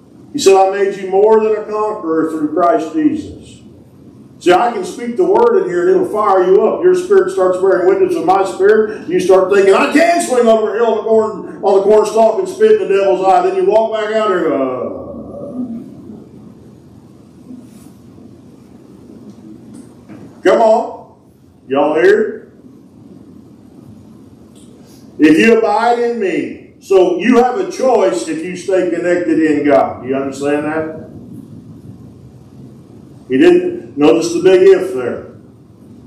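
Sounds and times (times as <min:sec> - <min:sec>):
low rumble of room noise: 0:00.0 - 0:36.0
man's voice: 0:00.4 - 0:03.6, 0:04.4 - 0:16.0, 0:25.2 - 0:31.1.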